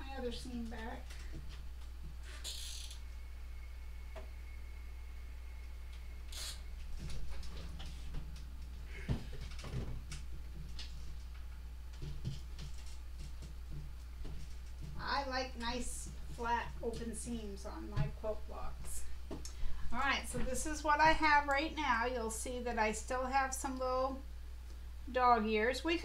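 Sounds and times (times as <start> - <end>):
low electrical hum: 0.0 - 26.0.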